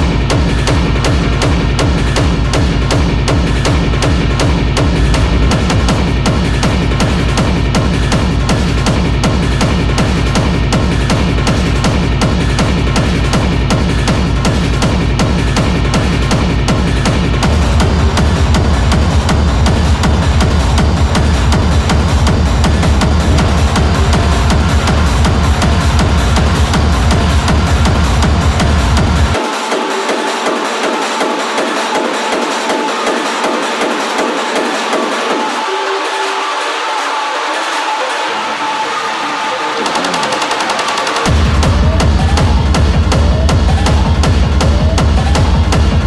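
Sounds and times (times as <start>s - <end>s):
hard techno mix: 0.0s - 46.0s
rising sweep: 4.8s - 6.9s, 20.3s - 26.3s.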